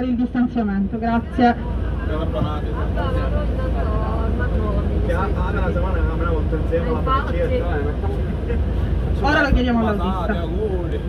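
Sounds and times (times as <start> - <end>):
bus engine rumble: 0.0 - 11.0
passengers chattering: 0.0 - 11.0.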